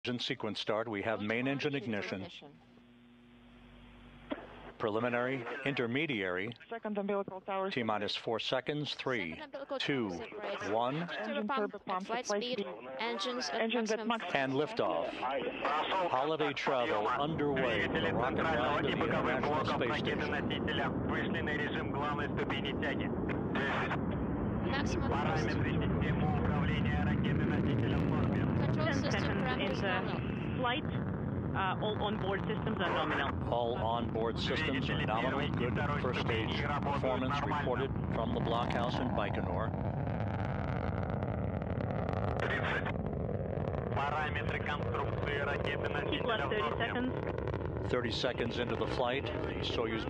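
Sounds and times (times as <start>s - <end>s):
radio voice callouts: 0.0s - 2.6s, 4.3s - 31.0s, 31.6s - 39.7s, 42.4s - 42.9s, 44.0s - 47.2s, 47.9s - 50.0s
rocket engines roaring: 3.8s - 6.6s, 14.2s - 50.0s.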